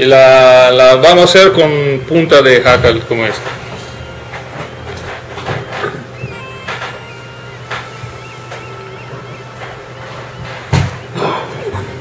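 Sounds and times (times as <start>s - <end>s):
low room hum: 0.0s - 12.0s
faint high chirping whistles: 5.9s - 11.2s.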